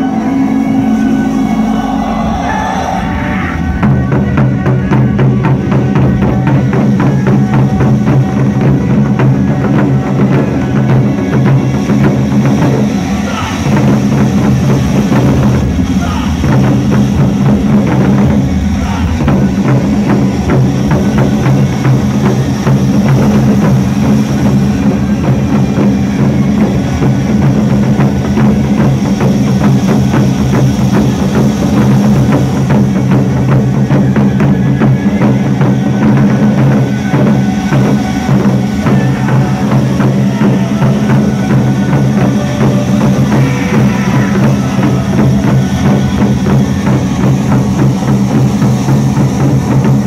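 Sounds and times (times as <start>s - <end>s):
large drums played in unison: 0.0s - 50.0s.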